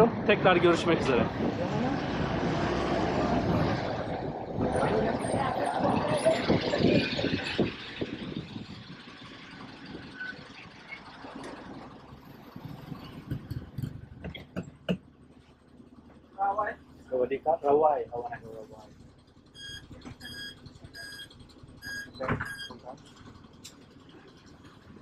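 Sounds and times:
bus engine and road noise: 0.0 - 25.0.

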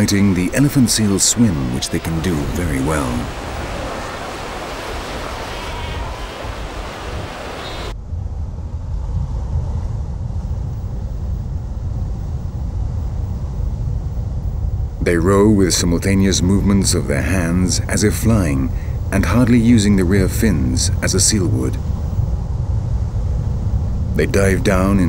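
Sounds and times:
sea waves splashing: 0.0 - 8.0.

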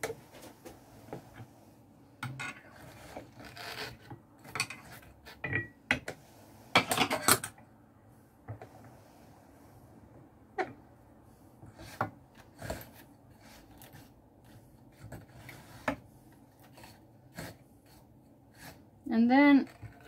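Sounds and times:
faint scratching: 11.7 - 20.0.

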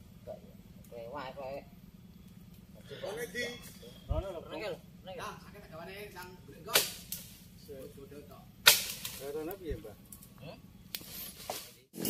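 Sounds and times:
sharp wood cracks: 6.7 - 7.5, 8.6 - 9.5.

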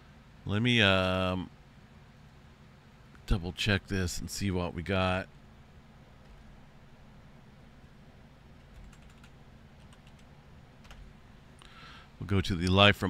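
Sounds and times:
low room hum: 0.0 - 13.0
keyboard typing: 8.6 - 11.1.

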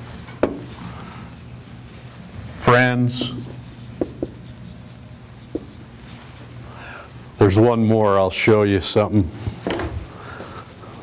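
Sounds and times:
marker writing on a whiteboard: 3.1 - 6.0.

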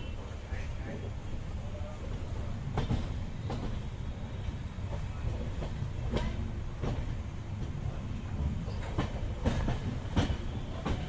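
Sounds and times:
train rumbling on rails: 0.0 - 11.0
wheels clicking over rail joints: 4.8 - 11.0.

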